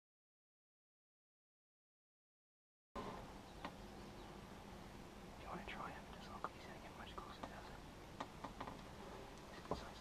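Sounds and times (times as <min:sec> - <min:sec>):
faint whispering: 0:05.4 - 0:07.9, 0:09.2 - 0:10.0.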